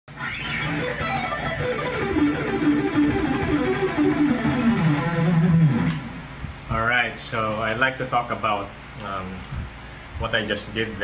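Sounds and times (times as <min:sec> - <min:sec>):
electric guitar fast run: 0:00.1 - 0:06.2.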